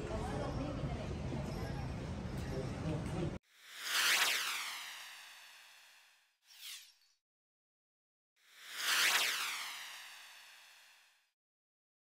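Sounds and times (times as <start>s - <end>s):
whoosh transition effect: 3.7s - 6.9s, 8.6s - 11.2s.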